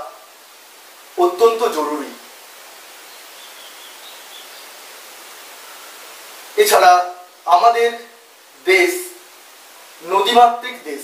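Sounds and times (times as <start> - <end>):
background hiss: 0.0 - 11.0
faint high chirps: 3.0 - 4.8.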